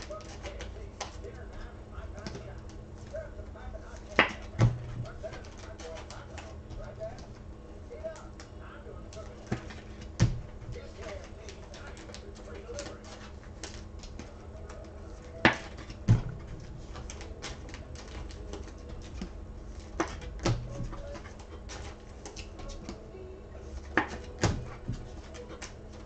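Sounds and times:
cards clicking and tapping: 0:00.0 - 0:03.2, 0:03.8 - 0:07.4, 0:08.0 - 0:23.0, 0:23.6 - 0:26.0
low hum: 0:00.0 - 0:26.0.

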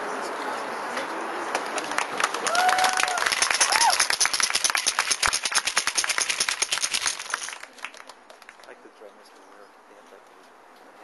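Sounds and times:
crowd clapping: 0:01.5 - 0:08.8.

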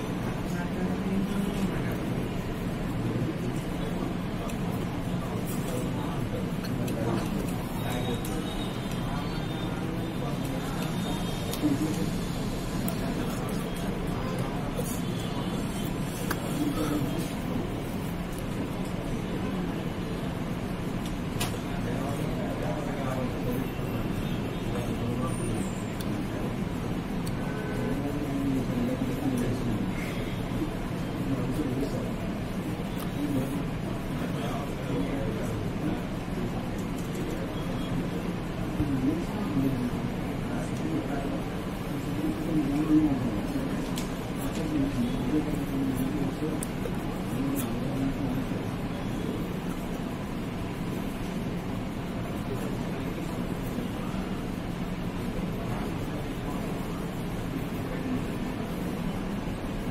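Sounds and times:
low background noise: 0:00.0 - 0:59.9.

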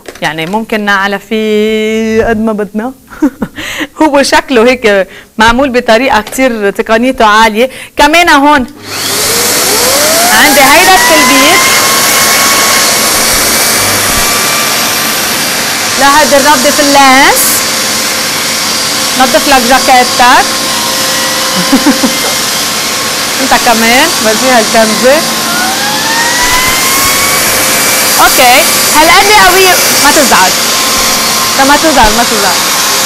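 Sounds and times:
vacuum cleaner running: 0:08.3 - 0:33.0.

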